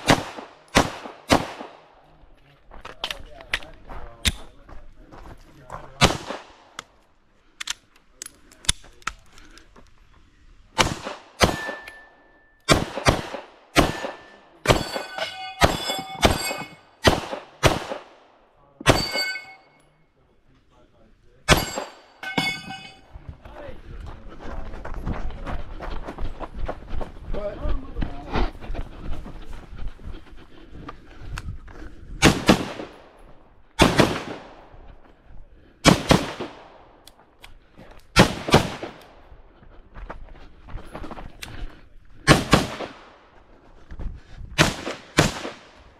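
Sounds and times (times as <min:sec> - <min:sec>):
pistol shots: 0:00.0 - 0:01.9, 0:06.0 - 0:06.8, 0:10.8 - 0:12.1, 0:12.7 - 0:19.5, 0:21.5 - 0:22.1, 0:32.2 - 0:33.1, 0:33.8 - 0:34.6, 0:35.8 - 0:37.0, 0:38.1 - 0:39.1, 0:42.3 - 0:43.2, 0:44.6 - 0:45.8
steel targets ringing: 0:11.5 - 0:12.6, 0:13.8 - 0:17.0, 0:18.8 - 0:20.0, 0:21.5 - 0:23.1.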